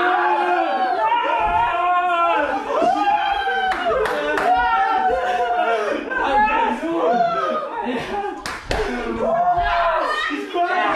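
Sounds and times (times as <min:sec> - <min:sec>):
men shouting and cheering: 0:00.0 - 0:10.9
hand claps: 0:08.4 - 0:09.0.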